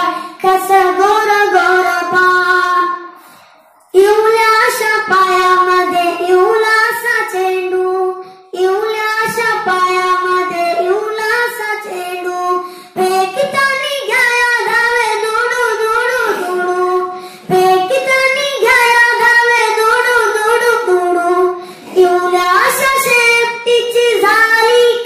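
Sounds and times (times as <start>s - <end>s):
boy singing into a microphone: 0.0s - 25.0s.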